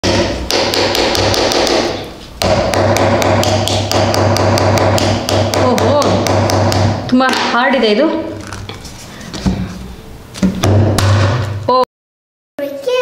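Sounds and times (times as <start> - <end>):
plastic spoon tapping toy egg: 2.5 - 7.5.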